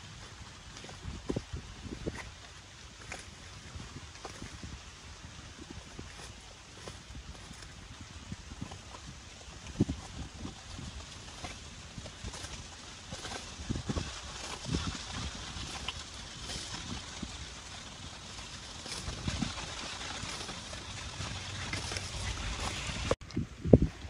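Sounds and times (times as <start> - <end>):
leaves rustling: 0.0 - 23.2
low steady rumble: 0.0 - 24.0
sickle cutting stems: 0.1 - 4.6, 8.6 - 23.2.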